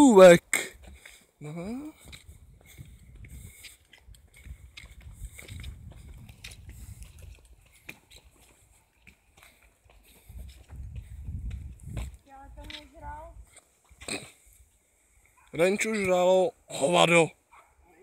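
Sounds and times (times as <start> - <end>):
footsteps on forest path: 0.6 - 15.6.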